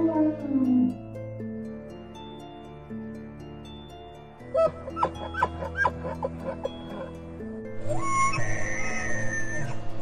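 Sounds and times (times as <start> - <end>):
background music with held notes: 0.0 - 10.0.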